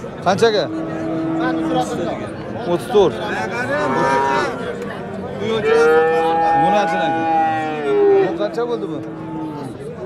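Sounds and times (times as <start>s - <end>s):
young cattle mooing: 3.6s - 4.7s, 5.6s - 9.8s.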